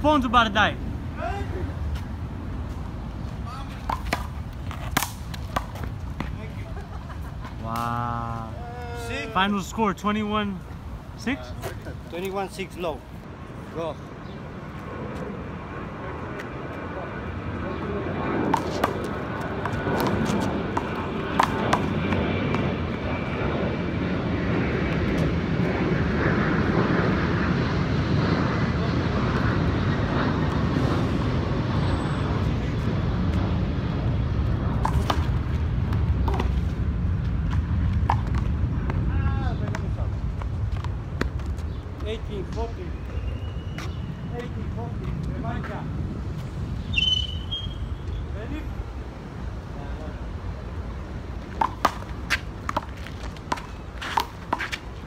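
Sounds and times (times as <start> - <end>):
aircraft passing overhead: 0.0 - 55.0.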